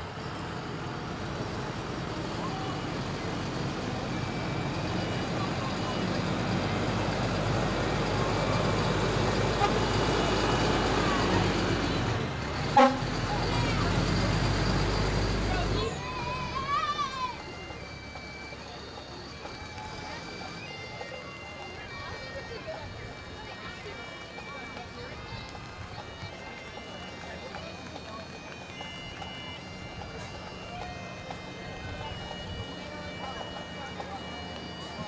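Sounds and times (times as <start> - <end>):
fire truck engines rumbling: 0.0 - 35.0
truck horn toot: 8.6 - 16.2.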